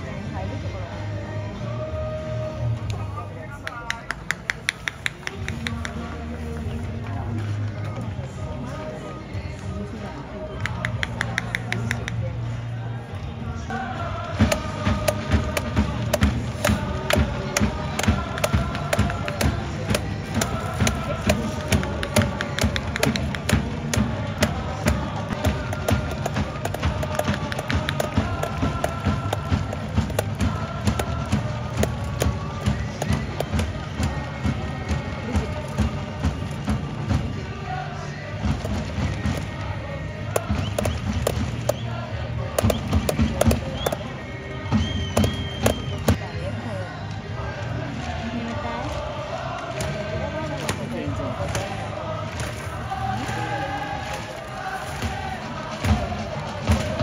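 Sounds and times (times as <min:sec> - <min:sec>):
crowd chanting: 0:05.0 - 0:57.0
steady drum beat: 0:14.2 - 0:37.7, 0:38.4 - 0:42.0, 0:42.6 - 0:46.2, 0:50.8 - 0:57.0.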